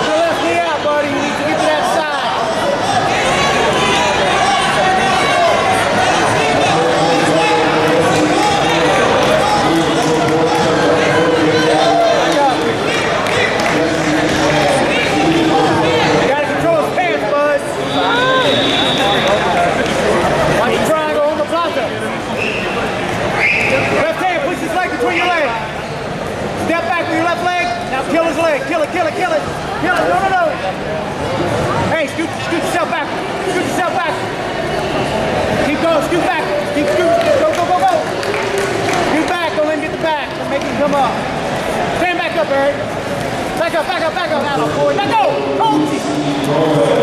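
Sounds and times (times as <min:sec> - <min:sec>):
shouted voices in a hall: 0:00.0 - 0:47.0.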